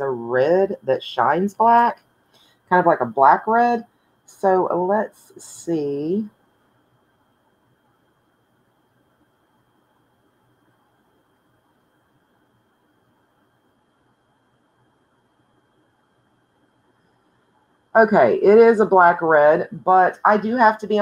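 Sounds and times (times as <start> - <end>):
faint background hiss: 0.0 - 21.0.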